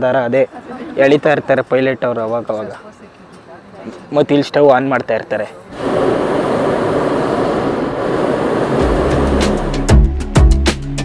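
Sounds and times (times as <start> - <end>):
propane burner roaring: 0.0 - 10.2
music with deep bass beat: 8.8 - 11.0.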